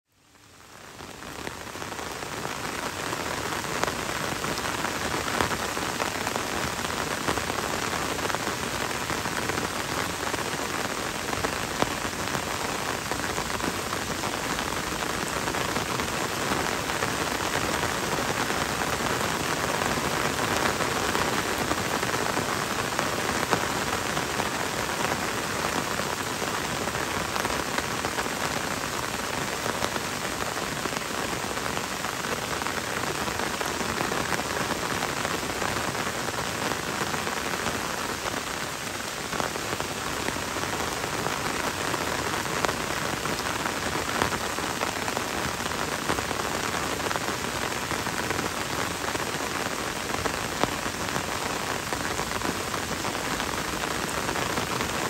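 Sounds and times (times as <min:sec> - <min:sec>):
gentle rain: 0:00.0 - 0:55.0.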